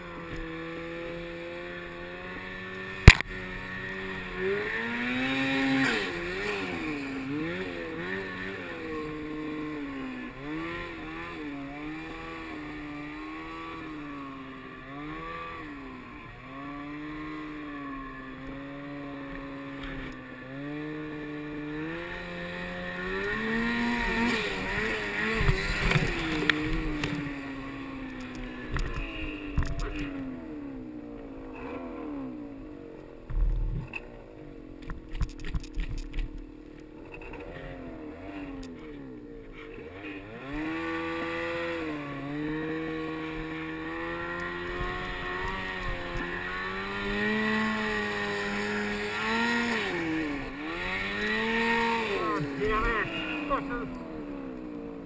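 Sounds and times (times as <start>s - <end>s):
snowmobile engine revving: 0.0s - 32.5s, 37.0s - 55.0s.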